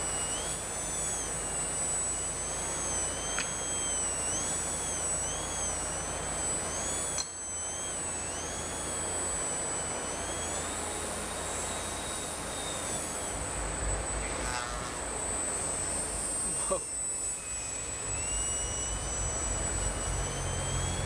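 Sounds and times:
model plane motor whining: 0.0s - 21.0s.

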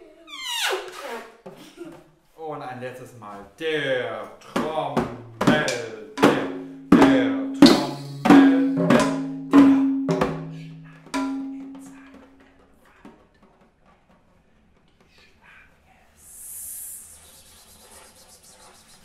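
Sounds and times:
frame drums struck by hand: 4.4s - 15.3s.

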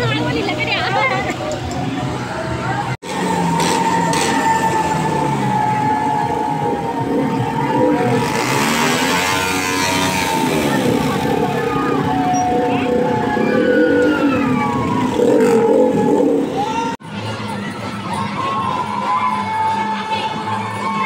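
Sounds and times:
diesel tractor engine: 0.0s - 17.0s
people's voices: 0.0s - 21.0s.

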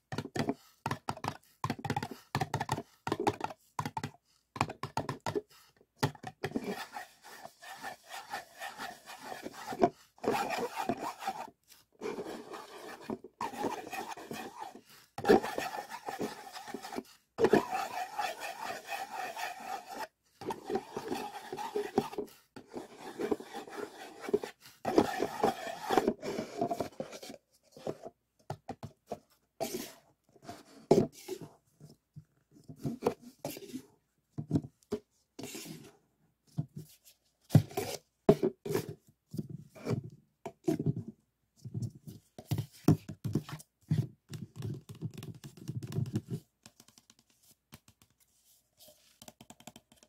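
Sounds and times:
fingertips scratching paper cups: 6.4s - 27.1s.

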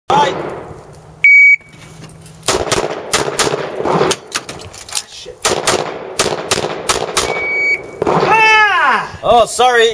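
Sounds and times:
shot timer beep: 1.2s - 1.7s, 7.2s - 8.0s
pistol shots: 2.5s - 4.5s, 5.4s - 8.3s.

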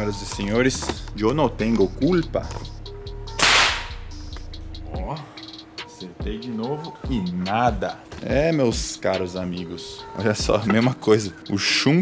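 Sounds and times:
sharp gunshot: 3.4s - 4.1s.

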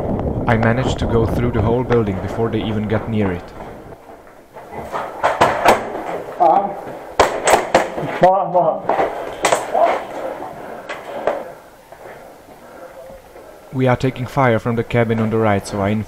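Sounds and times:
pellet hits: 5.0s - 8.3s
people shouting: 9.4s - 11.6s.

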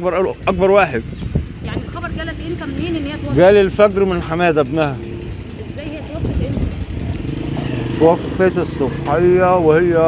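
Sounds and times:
small motor engine chugging: 0.0s - 10.0s.

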